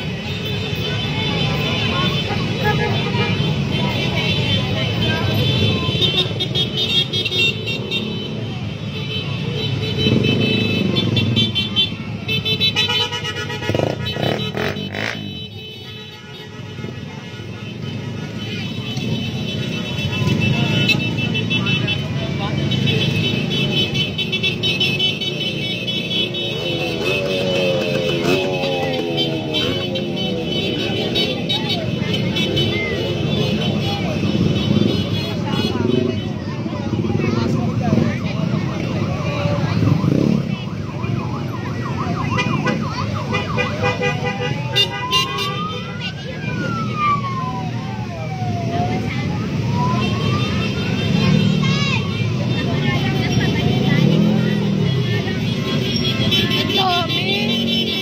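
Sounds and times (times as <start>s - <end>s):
voices: 0.0s - 58.0s
vehicle horns blasting: 0.3s - 4.6s, 5.4s - 28.4s, 42.2s - 45.7s
engines running: 26.0s - 32.1s.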